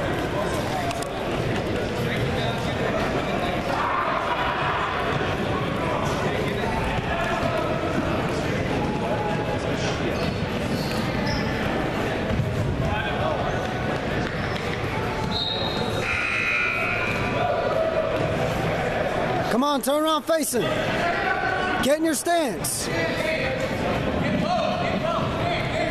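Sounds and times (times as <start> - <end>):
voices echoing in a gym hall: 0.0 - 25.9
short high squeals: 15.3 - 17.3.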